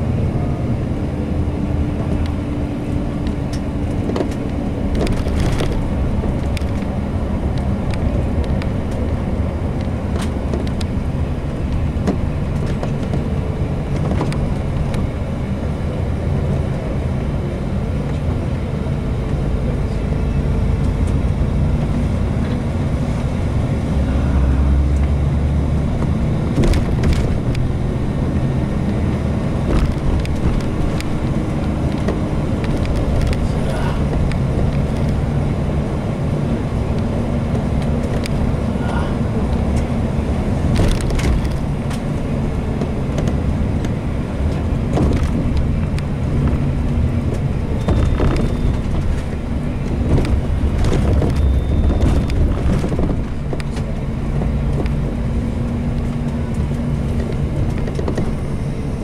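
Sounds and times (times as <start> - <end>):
bus engine and tyres rumbling: 0.0 - 59.0.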